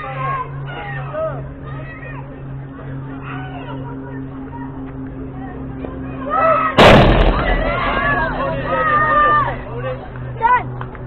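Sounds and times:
voices shouting: 0.0s - 10.8s.

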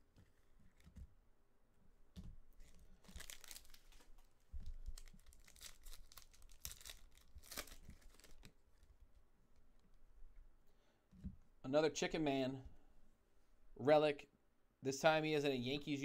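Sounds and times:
foil wrapper tearing and crinkling: 2.6s - 8.6s.

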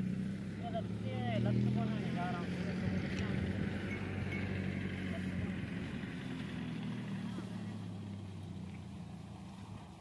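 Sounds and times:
engine humming: 0.0s - 10.0s.

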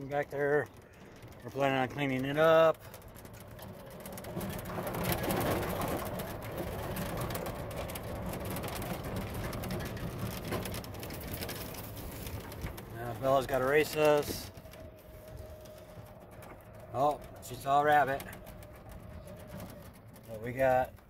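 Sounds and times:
golf cart rumbling over rough ground: 0.0s - 21.0s.

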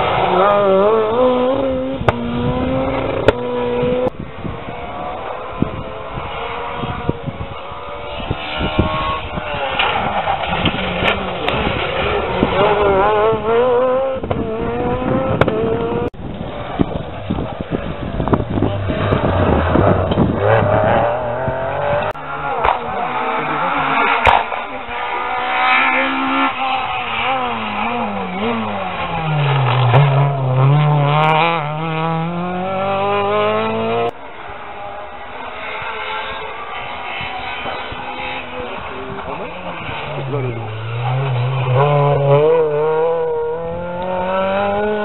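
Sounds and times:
faint engine: 0.0s - 45.0s
rally car engine: 0.0s - 45.0s.

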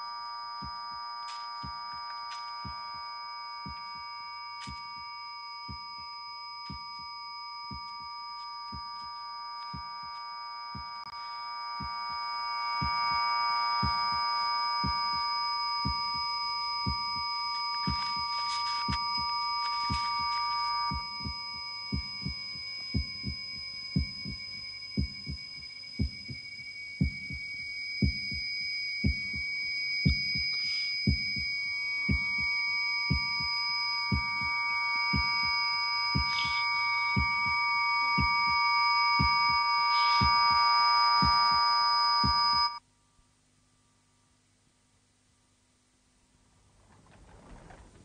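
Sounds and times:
high-pitched whistling tones: 0.0s - 42.8s
slow heartbeat-like thudding: 0.6s - 1.0s, 1.6s - 5.1s, 5.7s - 6.1s, 6.7s - 7.1s, 7.7s - 9.1s, 9.7s - 11.1s, 11.8s - 12.2s, 12.8s - 38.6s, 39.2s - 42.7s.

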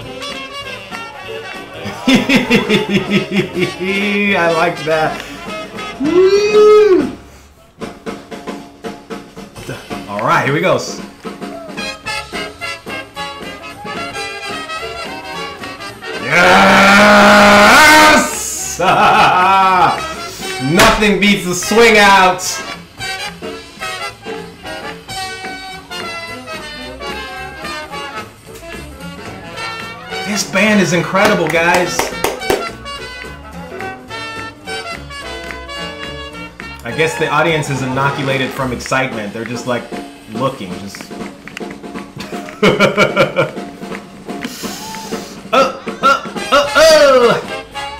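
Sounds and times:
drum kit beat: 17.0s - 22.0s, 30.3s - 32.9s
swing band playing: 20.0s - 47.9s.

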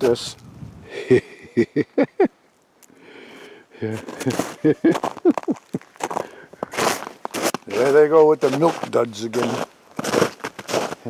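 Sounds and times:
man laughing and half-speaking: 0.8s - 2.4s, 3.8s - 6.0s.

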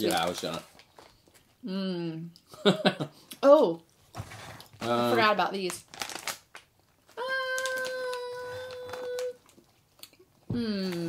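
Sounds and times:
snack packaging rustling: 0.0s - 1.6s, 4.1s - 11.0s.

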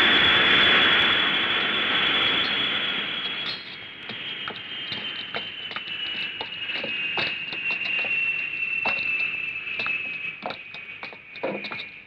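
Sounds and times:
jet engines whining down: 0.0s - 12.0s.

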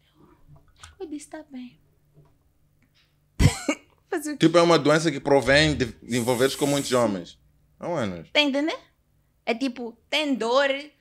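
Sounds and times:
person coughing: 3.4s - 3.8s.

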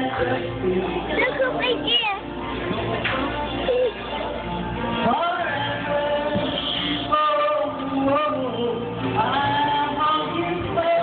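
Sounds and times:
person singing karaoke: 0.0s - 11.0s.

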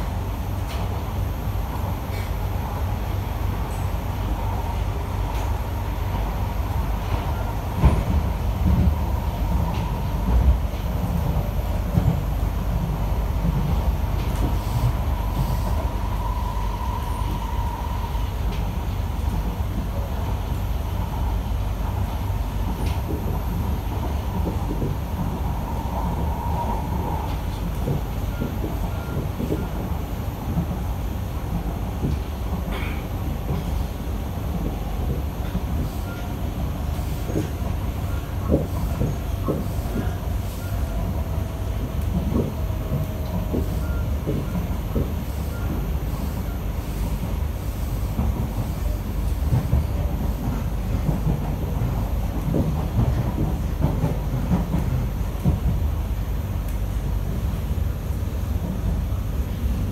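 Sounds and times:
train wheels rumbling on track: 0.0s - 59.9s.

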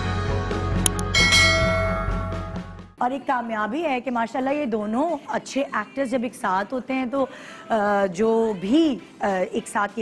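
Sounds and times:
background music: 0.0s - 10.0s
notification bell chime: 0.9s - 2.7s.

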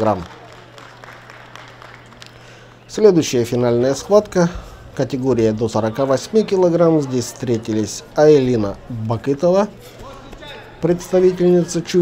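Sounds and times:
sports hall spectators: 0.0s - 12.0s.

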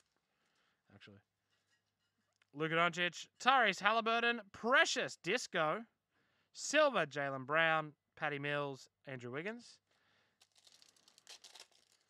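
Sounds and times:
plastic wrapper crinkling and tearing: 10.4s - 12.0s.

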